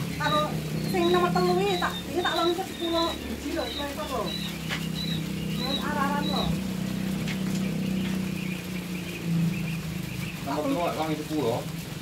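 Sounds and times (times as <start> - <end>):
quail chicks peeping: 0.0 - 12.0
steady low hum: 0.0 - 12.0.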